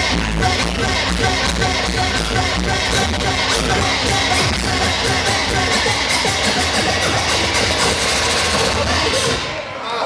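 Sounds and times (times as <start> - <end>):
hip-hop beat over pa: 0.0 - 9.8.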